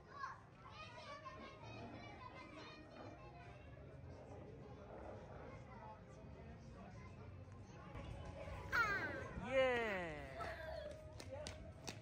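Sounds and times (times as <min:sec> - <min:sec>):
distant children playing and calling: 0:00.0 - 0:04.0, 0:07.0 - 0:09.4.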